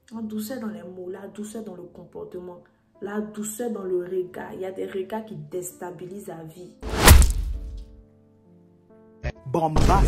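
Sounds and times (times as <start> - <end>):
loud thud: 6.8 - 7.8.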